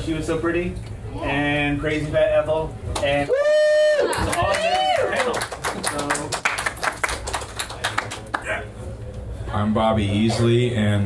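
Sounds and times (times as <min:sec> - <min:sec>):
small audience applauding: 0:03.0 - 0:08.6.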